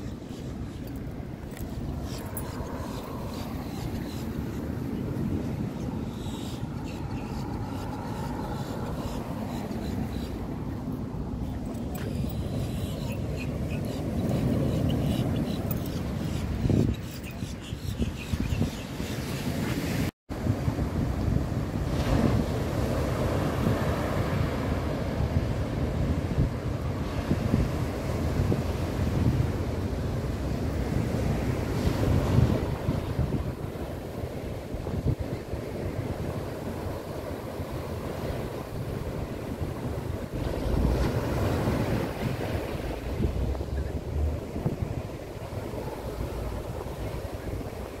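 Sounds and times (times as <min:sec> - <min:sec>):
wind buffeting microphone: 0:00.0 - 0:48.0
ocean surf breaking: 0:19.4 - 0:48.0.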